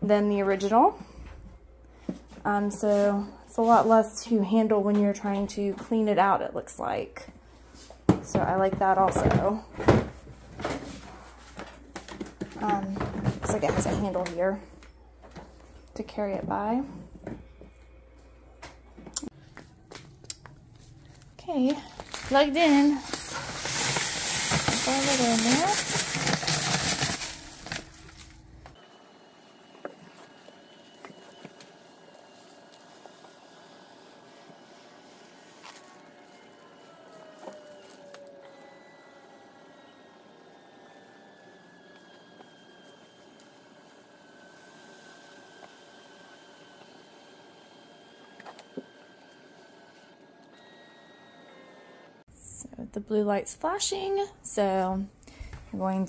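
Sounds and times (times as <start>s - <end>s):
plastic rustling: 20.8s - 28.8s, 30.2s - 33.5s.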